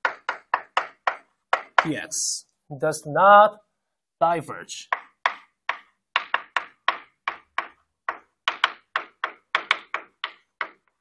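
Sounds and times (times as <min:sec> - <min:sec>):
chalk tapping on blackboard: 0:00.0 - 0:02.2, 0:04.8 - 0:11.0.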